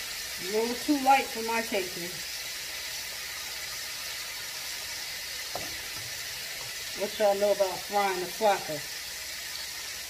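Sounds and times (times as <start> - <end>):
chicken sizzling in hot oil: 0.0 - 10.0.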